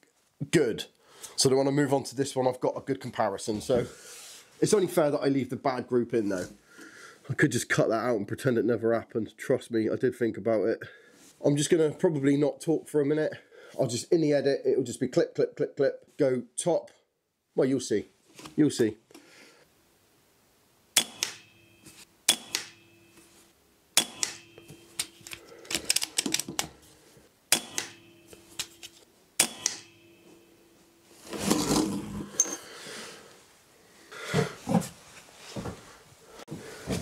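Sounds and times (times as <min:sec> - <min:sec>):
metallic ring: 0:21.3 - 0:22.0, 0:22.7 - 0:23.5, 0:24.4 - 0:25.3, 0:27.6 - 0:32.7
rifle handling noise: 0:24.0 - 0:26.8.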